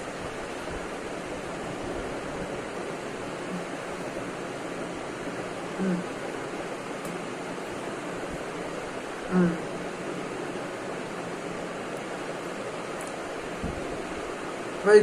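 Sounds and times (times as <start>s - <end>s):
steady background hiss: 0.0s - 15.0s
person humming mm: 3.5s - 3.7s, 5.8s - 6.2s, 9.3s - 9.7s.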